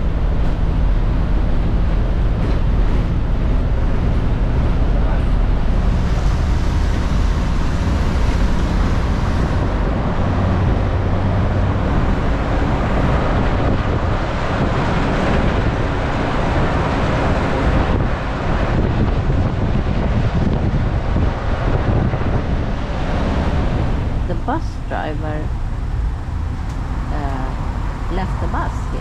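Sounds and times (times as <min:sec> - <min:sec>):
bus engine rumble: 0:00.0 - 0:29.0
road noise: 0:00.0 - 0:29.0
wind buffeting microphone: 0:00.0 - 0:29.0.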